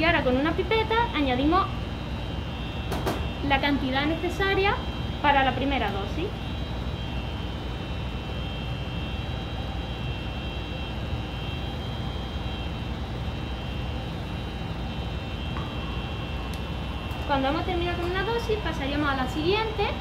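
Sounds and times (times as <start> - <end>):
blower fan whirring hiss: 0.0 - 20.0.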